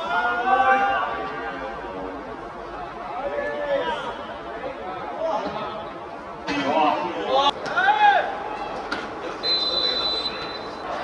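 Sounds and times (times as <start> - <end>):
referee's whistle blast: 9.4 - 10.8.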